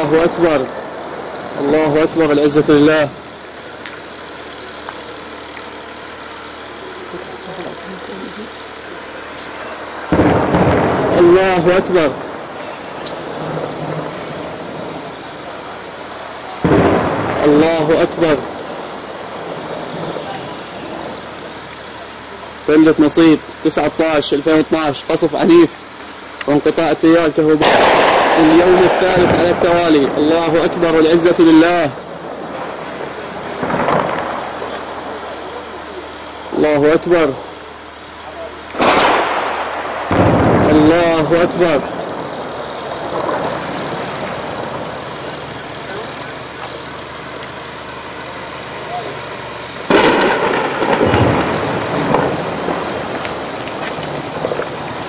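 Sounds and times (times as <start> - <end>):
low rumble with hiss: 0.0 - 55.0
outdoor background noise: 0.0 - 55.0
distant shell explosion: 10.1 - 15.2, 16.6 - 20.2, 27.6 - 30.2, 32.3 - 35.1, 38.7 - 45.1, 49.9 - 55.0.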